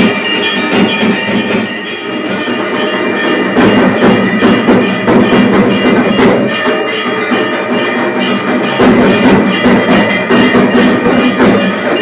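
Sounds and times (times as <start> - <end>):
bells and gongs clanging: 0.0 - 12.0
drumming: 0.0 - 12.0.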